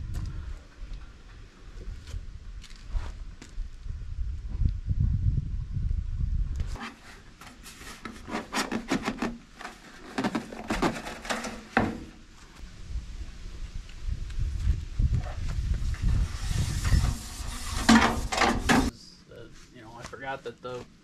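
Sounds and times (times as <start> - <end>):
sheet metal clanks and scrapes: 6.8 - 12.2, 16.4 - 18.9.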